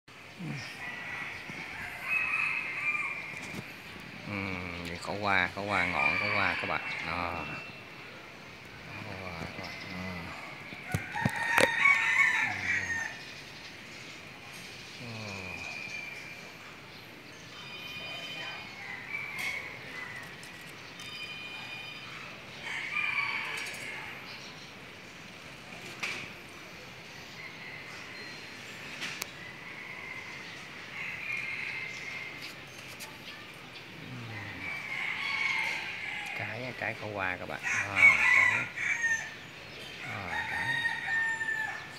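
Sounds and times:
rooster crowing: 0.4s - 7.8s, 8.9s - 13.4s, 18.0s - 20.6s, 22.5s - 24.3s, 27.3s - 28.5s, 29.4s - 32.4s, 34.1s - 41.9s.

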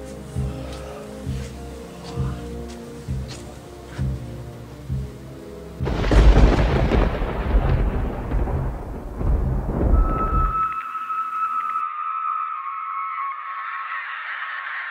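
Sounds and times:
loud boom with deep rumble: 5.9s - 10.7s.

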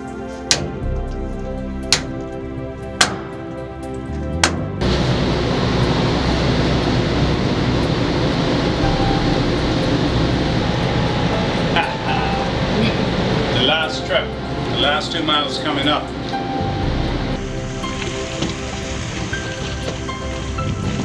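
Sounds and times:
background music: 0.0s - 21.0s
loud steady rushing noise: 0.0s - 21.0s.

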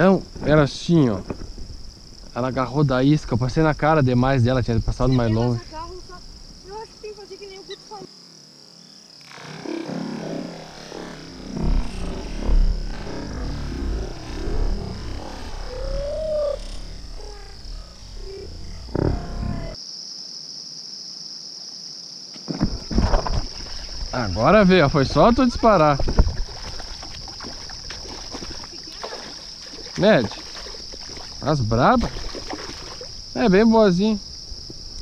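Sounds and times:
insects chirring: 0.0s - 35.0s
fish splashing in shallow water: 22.7s - 24.2s, 25.6s - 33.4s.

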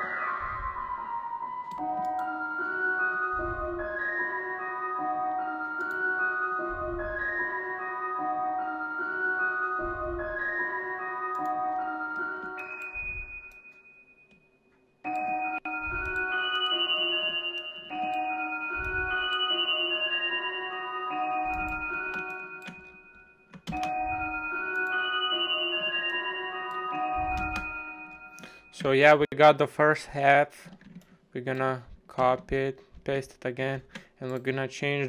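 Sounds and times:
dark synth lead melody: 0.0s - 13.8s, 15.1s - 28.8s.

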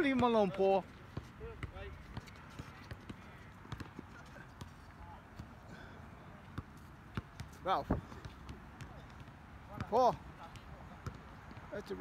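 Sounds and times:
basketball bouncing on hard court: 1.1s - 4.0s, 6.6s - 11.7s.

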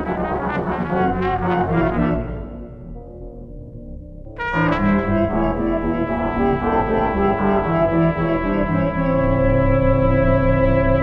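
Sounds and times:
brass-like ensemble chords: 0.0s - 3.3s, 4.2s - 11.0s.

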